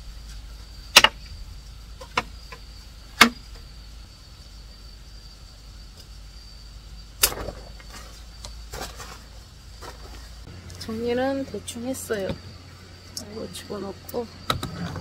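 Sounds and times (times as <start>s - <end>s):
high insect trill: 0.0s - 15.0s.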